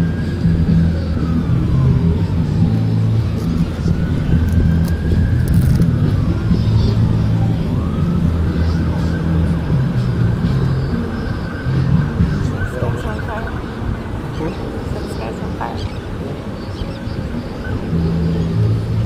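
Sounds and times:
loud steady low rumble: 0.0s - 16.6s
siren wailing: 0.0s - 19.0s.

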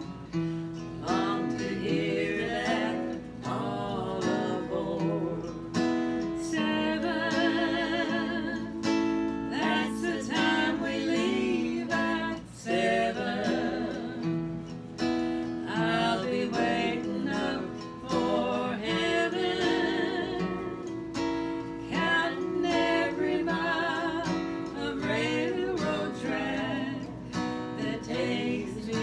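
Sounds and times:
strummed acoustic guitar: 0.0s - 29.0s
women singing together: 0.9s - 14.5s, 15.4s - 29.0s.

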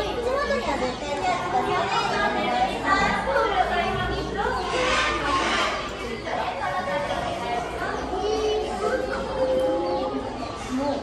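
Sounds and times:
children's voices: 0.0s - 11.0s
people chattering: 0.0s - 11.0s.

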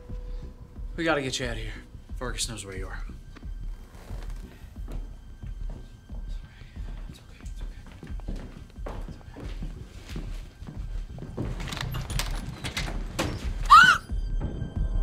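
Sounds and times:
tense film score: 0.0s - 15.0s
hurried footsteps: 2.1s - 14.0s.

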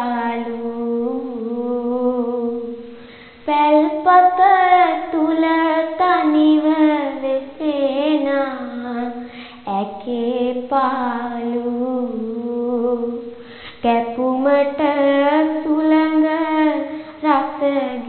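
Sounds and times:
girl chanting verse: 0.0s - 2.8s, 3.4s - 18.0s.

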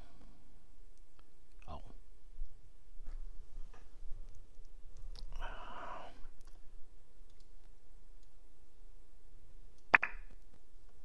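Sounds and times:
faint clicks: 7.2s - 8.4s.

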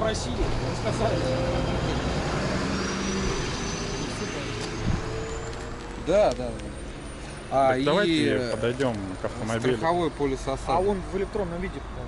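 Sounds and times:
road noise: 0.0s - 12.0s
vehicle engine rumble: 0.0s - 12.0s.

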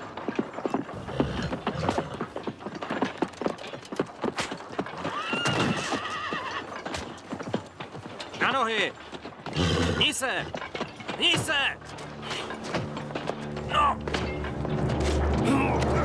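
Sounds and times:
horse hooves clattering: 0.0s - 16.0s
horse whinnying: 0.9s - 2.4s, 4.9s - 7.0s, 9.4s - 10.6s.

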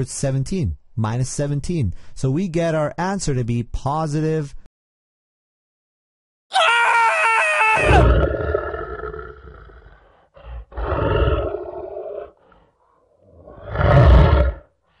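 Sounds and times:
lion roar sound effect: 7.7s - 14.7s.

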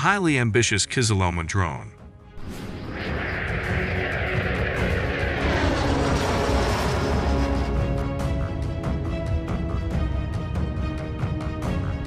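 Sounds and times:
jet flying past: 2.4s - 8.2s.

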